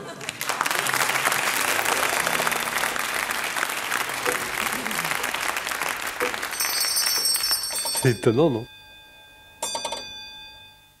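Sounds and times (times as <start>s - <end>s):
bell-like chime tones: 6.5s - 11.0s.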